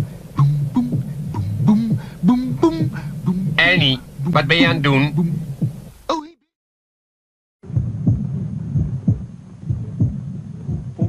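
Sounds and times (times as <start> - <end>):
low hum: 0.0 - 6.0
heartbeat thumps: 0.0 - 6.1, 7.6 - 11.0.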